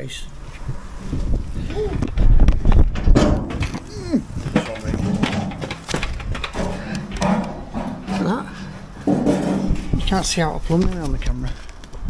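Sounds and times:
camera handling bumps and rubbing: 0:03.6 - 0:07.9.

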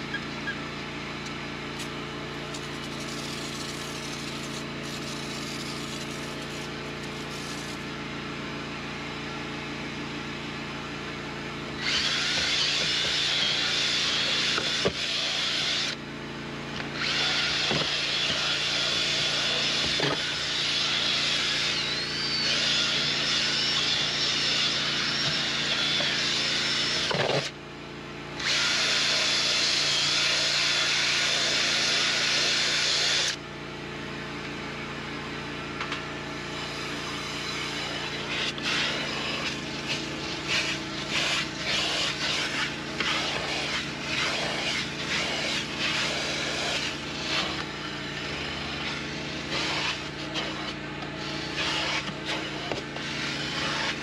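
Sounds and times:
steady motor hum: 0:00.0 - 0:54.0
cordless drill whirring: 0:01.2 - 0:08.0, 0:11.7 - 0:16.0, 0:16.7 - 0:27.6, 0:28.3 - 0:33.4, 0:35.8 - 0:54.0.

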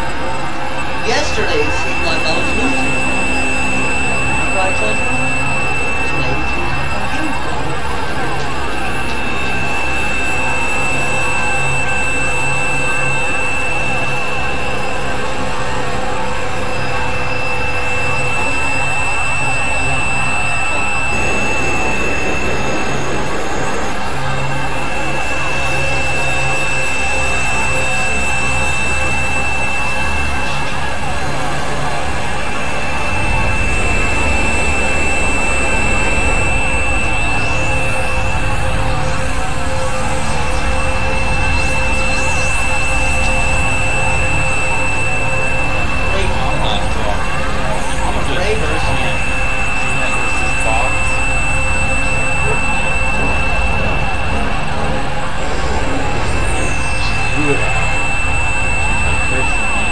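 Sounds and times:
electronic drone music: 0:00.0 - 0:59.9
high held synthesizer tone: 0:00.0 - 0:59.9.

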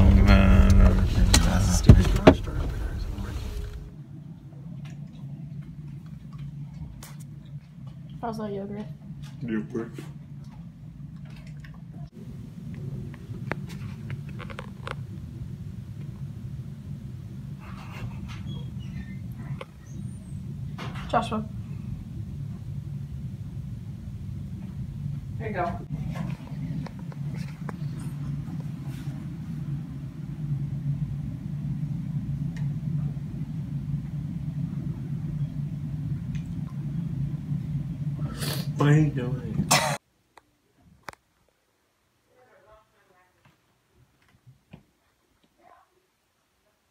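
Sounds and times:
indoor room hum: 0:00.0 - 0:46.9.

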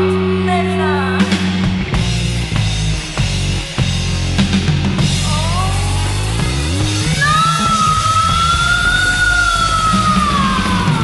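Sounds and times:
hard rock music: 0:00.0 - 0:11.0.

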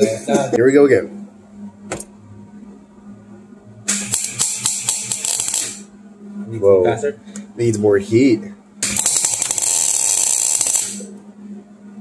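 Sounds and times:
faint steady hum: 0:00.0 - 0:12.0
welding arc crackling: 0:03.9 - 0:05.9, 0:08.8 - 0:11.1.

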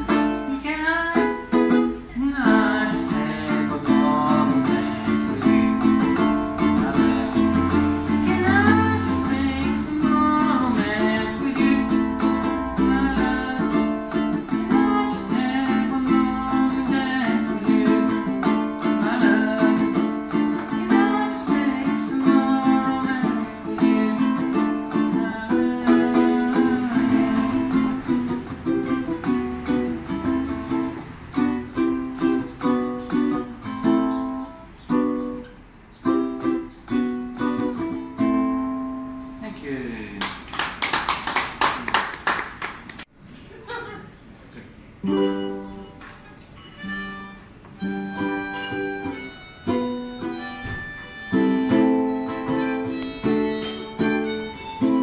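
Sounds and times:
ukulele strumming: 0:00.0 - 0:39.1, 0:45.0 - 0:55.0
wordless lead melody: 0:00.0 - 0:39.4, 0:45.0 - 0:55.0.

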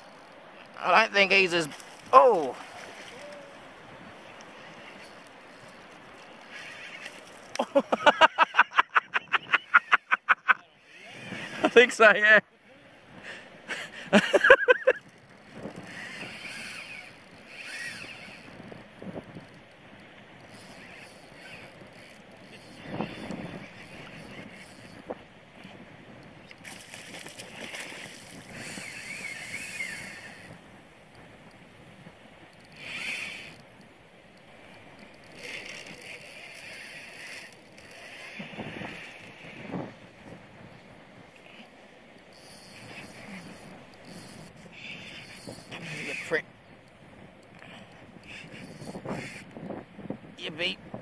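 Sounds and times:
spinning reel winding: 0:04.5 - 0:07.6, 0:14.8 - 0:19.7, 0:20.4 - 0:25.0, 0:26.5 - 0:30.6, 0:32.5 - 0:33.9, 0:35.0 - 0:39.7, 0:41.4 - 0:46.4, 0:47.5 - 0:49.6.

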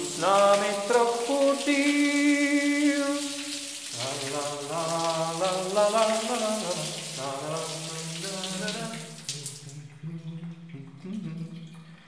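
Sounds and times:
low voice singing wordless tune: 0:00.0 - 0:12.0.

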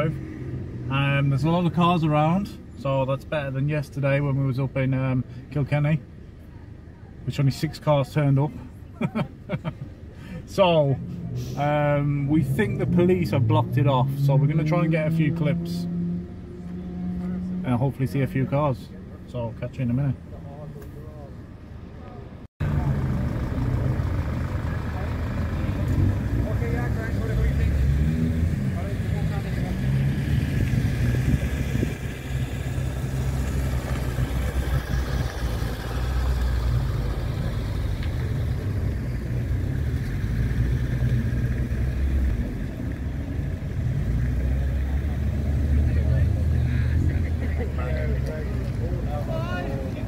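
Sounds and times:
car engine rumble: 0:00.0 - 0:50.0
road noise: 0:00.0 - 0:50.0
street noise: 0:00.0 - 0:50.0
voices outside: 0:00.0 - 0:50.0.

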